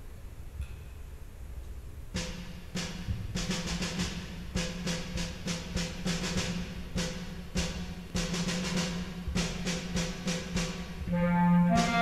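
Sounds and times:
snare drum march rhythm: 2.2 - 12.0.

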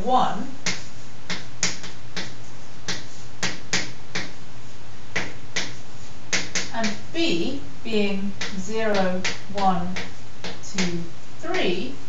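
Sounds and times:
steady low hum: 0.0 - 12.0
chalk tapping on blackboard: 0.6 - 4.4, 5.1 - 7.0, 8.4 - 11.7.

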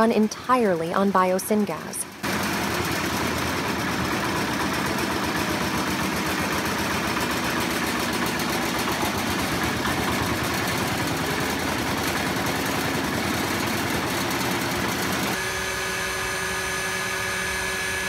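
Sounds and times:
diesel engine chugging at idle: 0.0 - 15.4.

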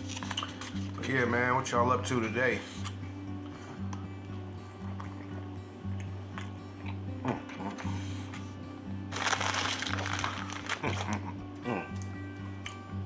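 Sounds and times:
background music with low tone: 0.0 - 13.0
chip bag crinkling: 9.1 - 11.3.

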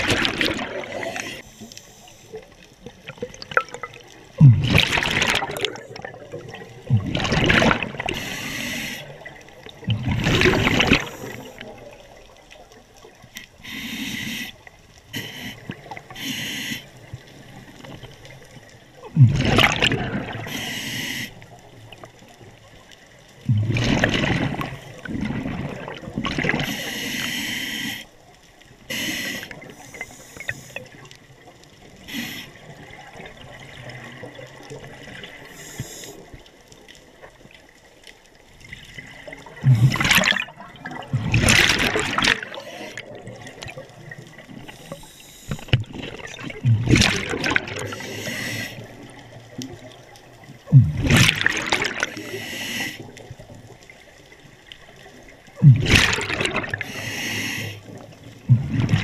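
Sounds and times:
diver exhaling bubbles underwater: 0.0 - 1.4, 3.0 - 8.4, 9.1 - 11.9, 19.0 - 20.5, 23.4 - 26.7, 38.8 - 44.6, 45.8 - 49.0, 50.7 - 53.2, 55.6 - 59.0
quiet bubbling water noise: 0.0 - 59.0.

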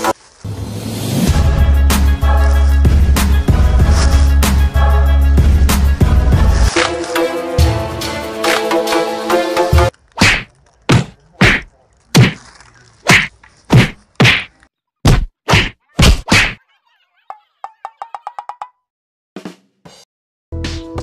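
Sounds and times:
music: 0.5 - 9.9, 19.4 - 21.0
fight punch sound effects: 10.2 - 12.4, 13.1 - 16.6.

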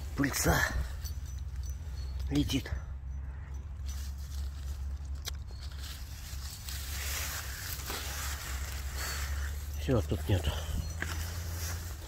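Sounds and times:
leafy plants rustling: 3.6 - 12.0.

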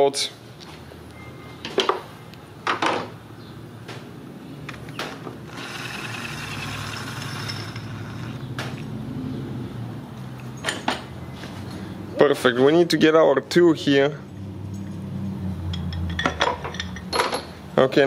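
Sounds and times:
power tool whirring: 4.9 - 8.9.

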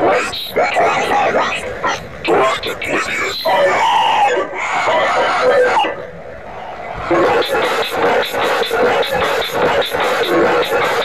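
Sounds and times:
cartoon voice shouting: 0.0 - 6.0.

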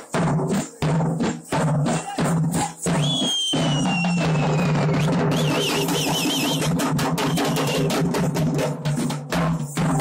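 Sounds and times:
drums beating fast roll: 0.0 - 10.0
high whistle warbling: 3.0 - 7.9.

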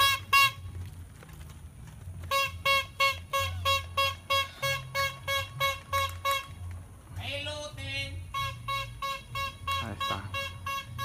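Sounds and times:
small squeeze horn tooting: 0.0 - 0.8, 2.2 - 6.6, 8.2 - 11.0.

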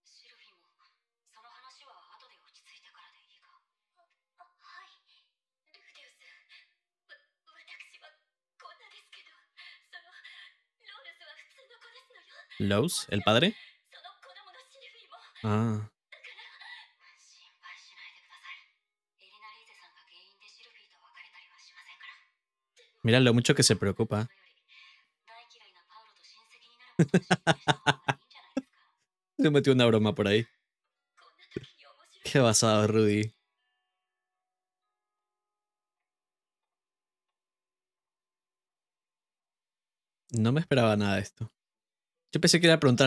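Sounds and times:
soft-spoken dialogue: 12.4 - 13.6, 15.4 - 15.9, 23.0 - 24.3, 27.0 - 28.2, 29.4 - 30.4, 31.5 - 33.3, 40.3 - 41.5, 42.4 - 43.0.

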